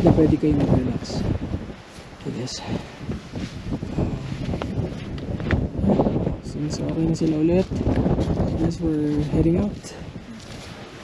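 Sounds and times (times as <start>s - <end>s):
wind buffeting microphone: 0.0s - 11.0s
footsteps on stony trail: 1.8s - 11.0s.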